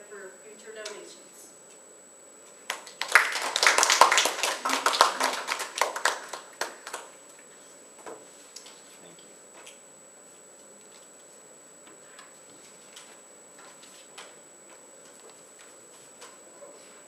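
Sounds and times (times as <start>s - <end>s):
people clapping: 2.7s - 7.2s.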